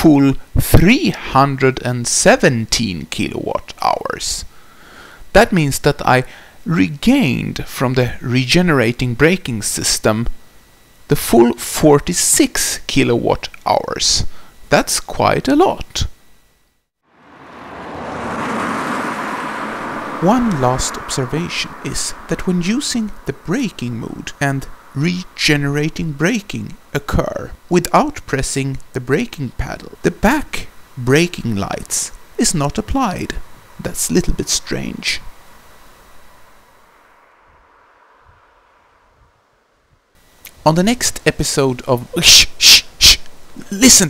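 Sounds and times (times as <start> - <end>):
soft steady outdoor hiss: 0.0 - 44.0
car tyre noise on asphalt: 17.0 - 27.7, 30.3 - 40.4.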